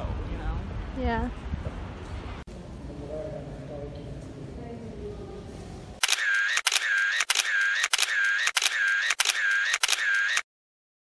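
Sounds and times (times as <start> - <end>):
camera shutter click and whirr: 6.0 - 10.5.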